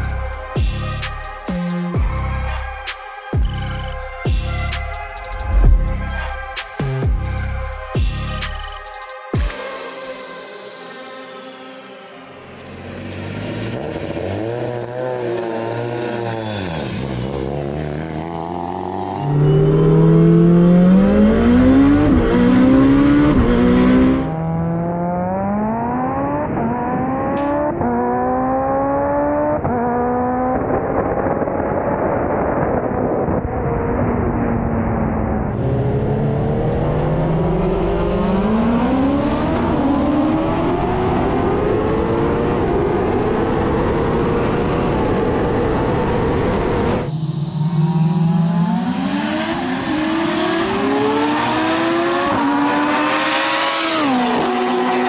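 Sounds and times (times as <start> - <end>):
car engine accelerating hard: 12.5 - 55.0.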